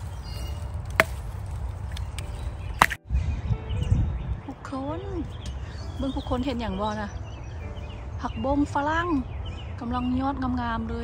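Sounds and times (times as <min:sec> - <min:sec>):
plant stems snapping: 0:00.0 - 0:03.0.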